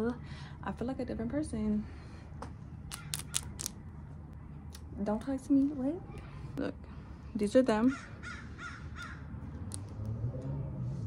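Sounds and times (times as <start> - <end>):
low steady hum: 0.0 - 10.8.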